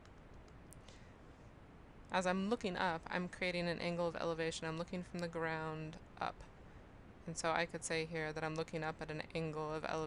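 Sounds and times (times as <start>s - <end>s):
faint clicks: 0.0s - 1.0s.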